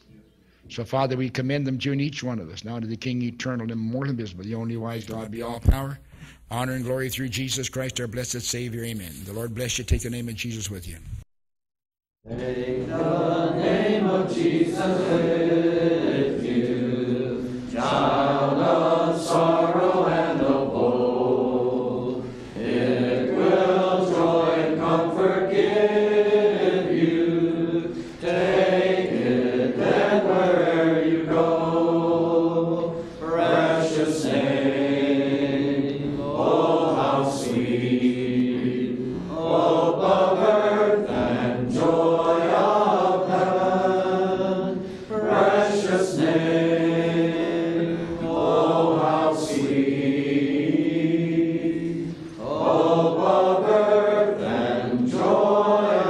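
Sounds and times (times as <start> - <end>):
congregation singing a hymn: 12.3 - 56.0.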